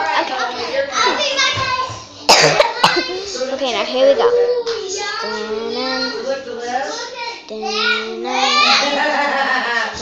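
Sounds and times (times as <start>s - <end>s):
girl talking: 0.0s - 9.1s.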